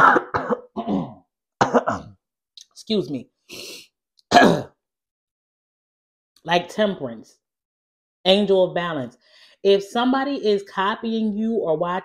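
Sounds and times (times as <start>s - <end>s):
woman coughing: 0.0s - 2.2s, 4.3s - 4.8s.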